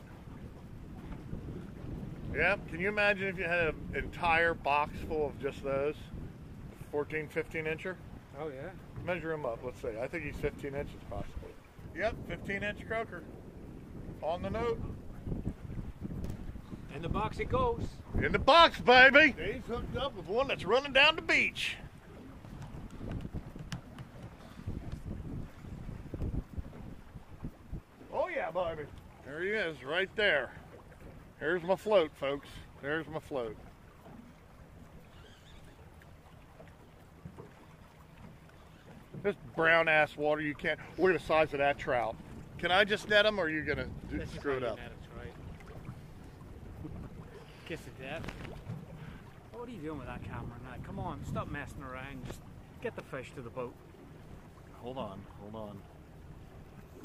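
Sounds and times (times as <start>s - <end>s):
water slapping metal hull: 0.0s - 57.0s
wind buffeting microphone: 0.0s - 57.0s.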